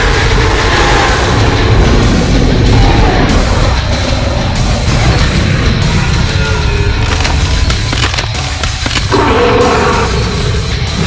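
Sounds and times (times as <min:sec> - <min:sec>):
dinosaur roar: 0:09.1 - 0:11.0.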